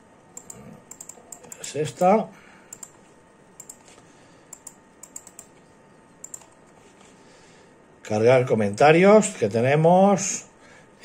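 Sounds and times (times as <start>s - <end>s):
computer keyboard and mouse clicks: 0.4s - 2.1s, 2.7s - 3.0s, 3.6s - 5.6s, 6.2s - 6.8s.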